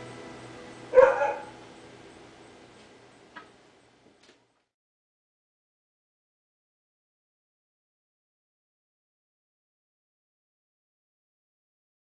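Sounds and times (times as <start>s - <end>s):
acoustic guitar chord: 0.0s - 1.7s
dog bark: 0.9s - 1.6s.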